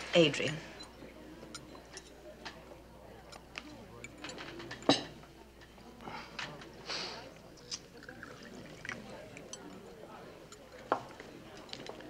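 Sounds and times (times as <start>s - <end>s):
faint murmur: 0.0s - 12.0s
small clinks: 0.8s - 5.8s, 7.7s - 12.0s.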